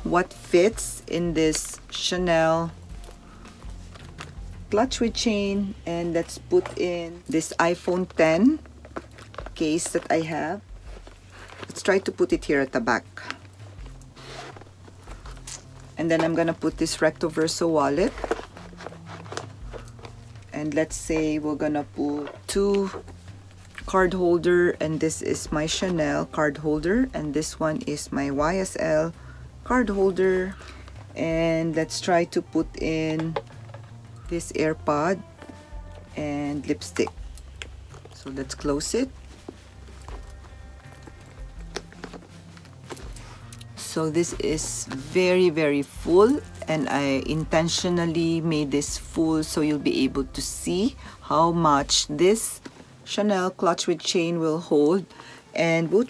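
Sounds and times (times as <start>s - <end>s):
background music with bass line: 0.0s - 11.4s, 12.3s - 52.5s
phone case sliding into pocket: 13.2s - 16.4s, 18.0s - 20.4s, 37.0s - 45.0s
faint clicks and rustles: 13.2s - 21.1s, 35.2s - 45.2s.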